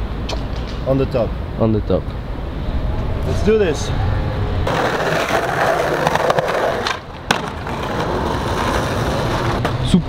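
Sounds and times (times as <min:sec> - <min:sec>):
skateboard wheels rolling on concrete: 0:04.6 - 0:10.0
skateboard landing clack: 0:04.7 - 0:09.8.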